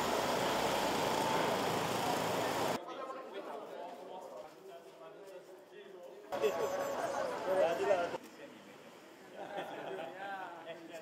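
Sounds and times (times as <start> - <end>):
steady traffic rush: 0.0 - 2.8, 6.4 - 8.2.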